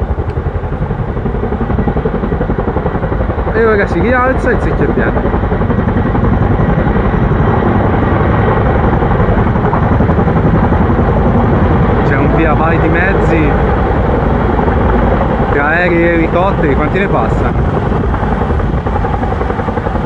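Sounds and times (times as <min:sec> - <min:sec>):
helicopter rotors beating: 0:00.0 - 0:20.0.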